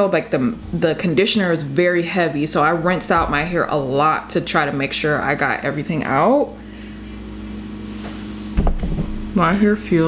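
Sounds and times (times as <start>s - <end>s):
low room hum: 0.0s - 10.0s
low thump: 8.6s - 9.3s.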